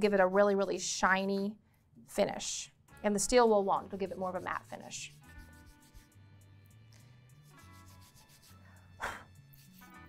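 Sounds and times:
quiet background music: 0:00.0 - 0:10.0
wire brush scrubbing metal wire: 0:03.8 - 0:06.1, 0:07.5 - 0:08.6.

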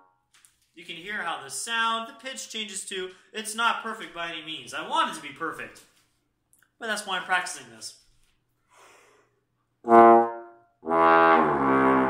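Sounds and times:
trombone note: 0:09.8 - 0:12.0.

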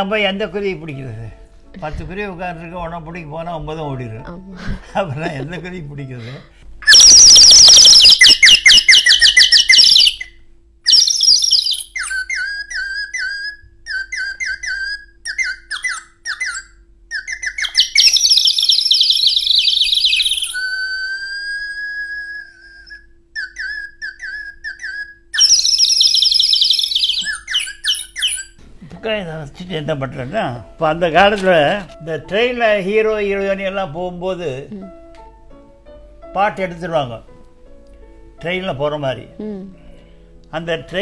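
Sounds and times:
man whistling bird calls: 0:06.8 - 0:28.6.

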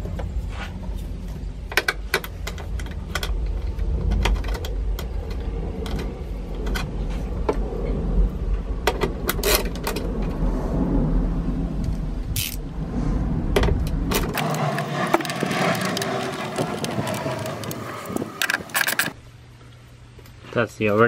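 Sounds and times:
low rumble: 0:00.0 - 0:20.2
plastic connectors clicking and rattling: 0:14.3 - 0:19.2.

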